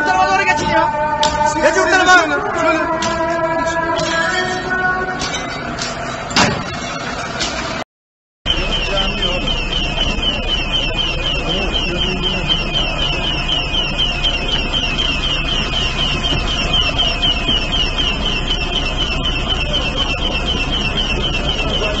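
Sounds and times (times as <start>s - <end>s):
high chirping electronic alarm: 0.0s - 6.2s, 8.5s - 22.0s
faint voices: 8.5s - 22.0s
low engine rumble: 8.5s - 22.0s.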